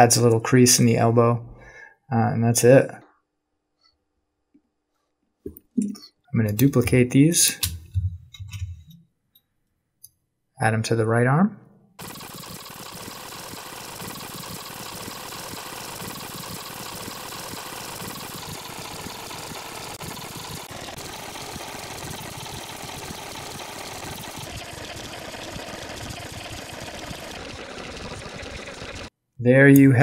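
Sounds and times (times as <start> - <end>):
mechanical buzzing whir: 12.0 - 29.1.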